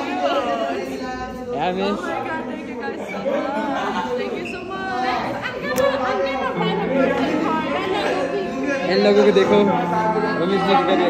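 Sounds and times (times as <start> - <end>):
excited chatter of voices: 0.0 - 11.0.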